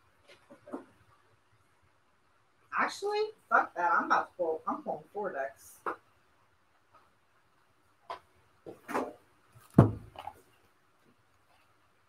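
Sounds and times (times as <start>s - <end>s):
card boxes knocking and rustling: 8.7s - 10.5s
loud thump: 9.7s - 10.2s.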